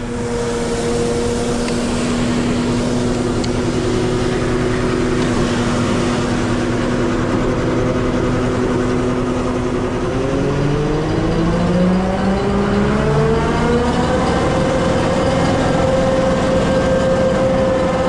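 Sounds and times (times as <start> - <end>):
truck engine and water pump: 0.0 - 18.0.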